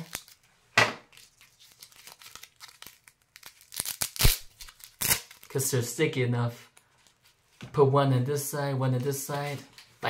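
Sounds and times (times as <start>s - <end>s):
paper packaging tearing: 0.0s - 0.4s, 1.1s - 5.6s.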